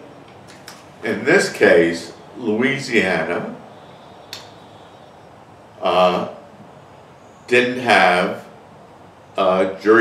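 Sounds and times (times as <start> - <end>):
short click: 4.3 - 4.5.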